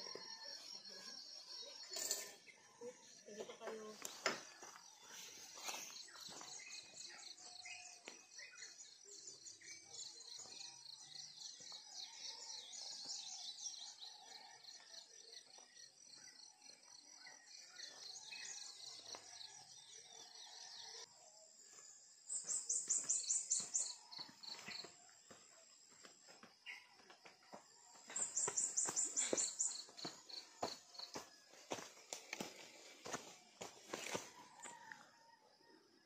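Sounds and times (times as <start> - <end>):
bird chirps: 21.7 - 25.8, 26.4 - 32.9.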